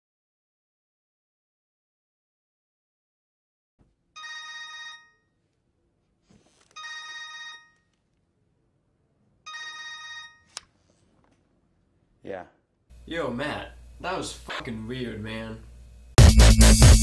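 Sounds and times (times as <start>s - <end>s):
mobile phone ringing: 4.2s - 5.4s, 6.7s - 7.9s, 9.4s - 10.6s.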